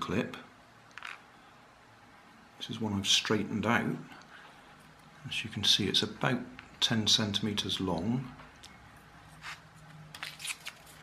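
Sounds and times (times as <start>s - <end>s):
low faint hum: 0.0s - 11.0s.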